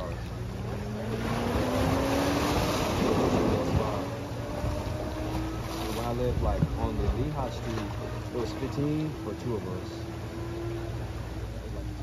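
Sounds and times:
faint steady hum: 0.0s - 12.0s
wind buffeting microphone: 0.7s - 9.0s.

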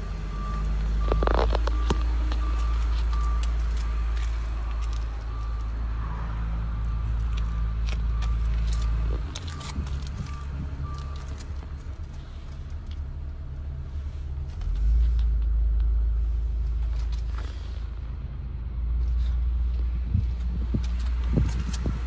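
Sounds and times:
car engine idling: 0.0s - 22.0s.

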